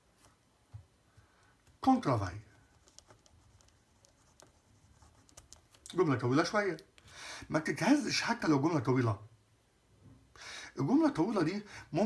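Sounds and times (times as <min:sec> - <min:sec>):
man speaking: 0:01.8 - 0:02.6, 0:05.9 - 0:06.9, 0:07.5 - 0:09.3, 0:10.8 - 0:12.0.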